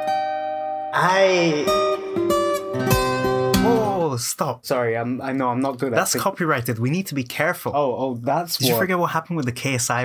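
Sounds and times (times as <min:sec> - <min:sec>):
man singing: 0:00.9 - 0:02.1, 0:03.6 - 0:04.1
plucked bouzouki: 0:02.1 - 0:04.0.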